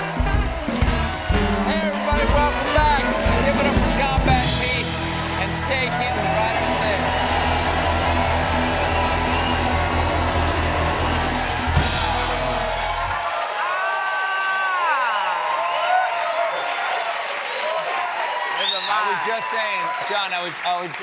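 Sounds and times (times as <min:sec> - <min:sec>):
band with piano and horns: 0:00.0 - 0:13.4
audience cheering and whooping: 0:00.0 - 0:20.9.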